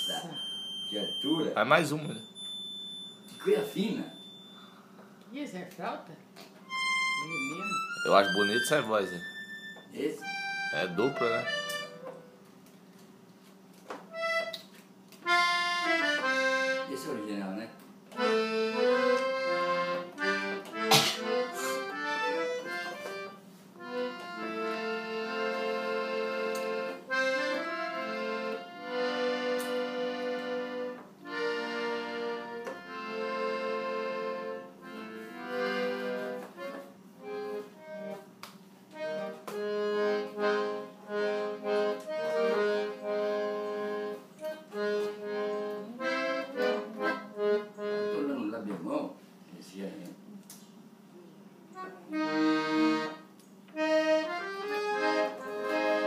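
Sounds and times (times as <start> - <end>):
piano accordion playing: 0.0 - 2.5, 3.2 - 4.8, 6.6 - 12.5, 14.1 - 48.8, 51.8 - 56.0.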